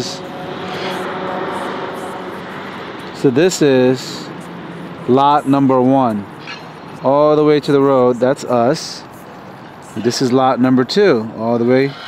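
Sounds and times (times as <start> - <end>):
distant engine rushing: 0.0 - 12.0.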